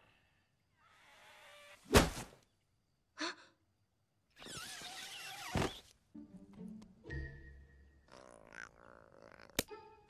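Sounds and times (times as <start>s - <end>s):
body thudding onto floor: 1.9s - 2.3s.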